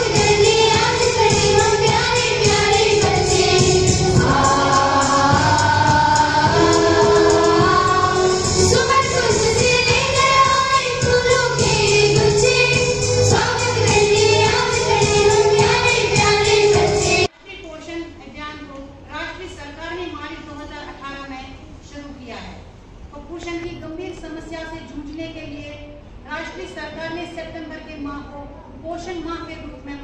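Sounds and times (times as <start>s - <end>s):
steady rhythmic beat: 0.0s - 17.3s
women singing together: 0.0s - 17.3s.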